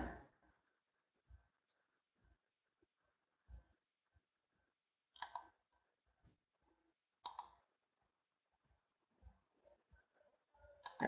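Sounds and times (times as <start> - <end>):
computer mouse double clicks: 7.2 - 7.5.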